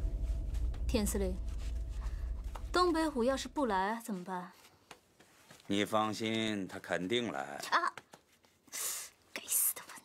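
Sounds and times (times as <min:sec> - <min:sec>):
person whispering: 0:09.3 - 0:10.0.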